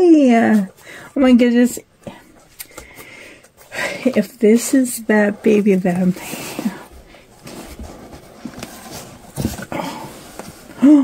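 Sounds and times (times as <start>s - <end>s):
blanket and cardboard rustling: 3.6s - 11.0s.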